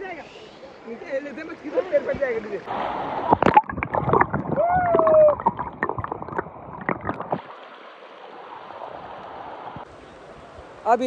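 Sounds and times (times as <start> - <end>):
underwater stream water rushing: 2.6 - 10.8.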